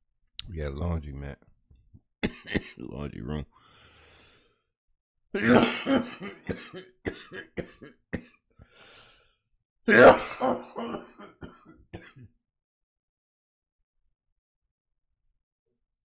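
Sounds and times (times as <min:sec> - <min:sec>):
man coughing hard: 0:02.2 - 0:02.8, 0:05.4 - 0:08.3, 0:09.9 - 0:12.3.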